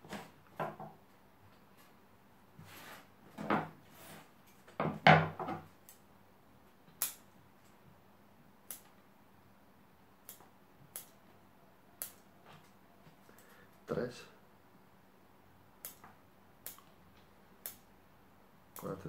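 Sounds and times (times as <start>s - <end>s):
scissors snipping: 6.9s - 7.3s, 8.7s - 9.0s, 10.2s - 11.2s, 12.0s - 12.3s, 15.8s - 16.9s, 17.6s - 17.8s.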